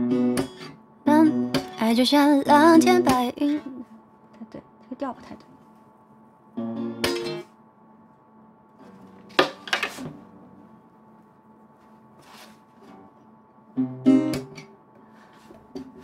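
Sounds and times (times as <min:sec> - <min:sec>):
acoustic guitar chords strummed: 0:00.0 - 0:03.9, 0:06.6 - 0:07.6, 0:12.8 - 0:14.8.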